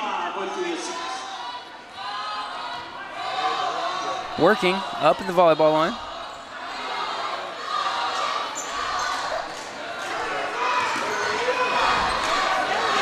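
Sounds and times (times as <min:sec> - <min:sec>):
crowd chattering: 0:00.0 - 0:13.0.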